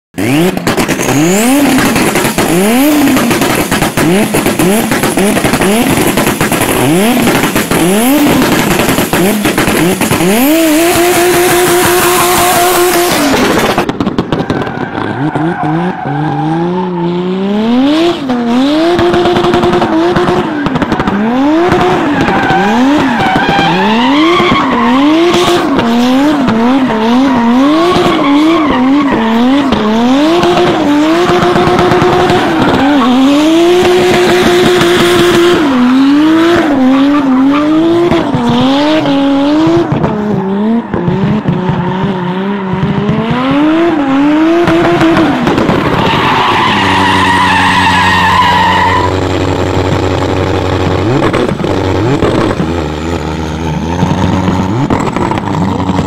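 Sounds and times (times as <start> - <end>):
car engine revving: 0.2 - 56.0.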